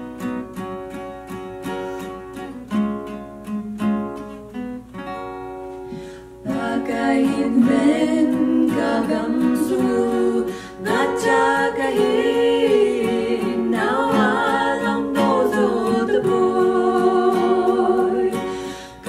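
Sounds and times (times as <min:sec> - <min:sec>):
acoustic guitar strummed softly: 0:00.0 - 0:19.0
women singing together: 0:06.4 - 0:19.0.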